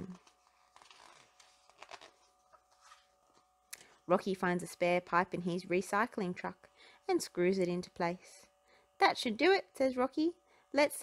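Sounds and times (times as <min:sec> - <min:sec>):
paper pages rustling: 0:00.0 - 0:03.9
faint steady hum: 0:00.0 - 0:11.0.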